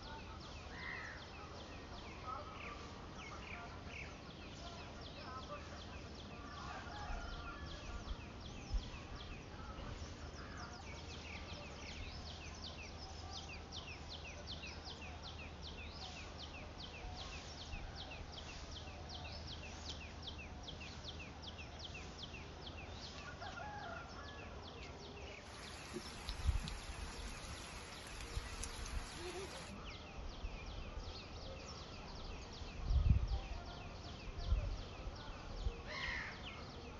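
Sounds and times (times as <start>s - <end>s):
faint outdoor hiss: 0.0s - 36.9s
high quick chirping: 25.5s - 29.8s
rain hissing: 25.5s - 29.8s.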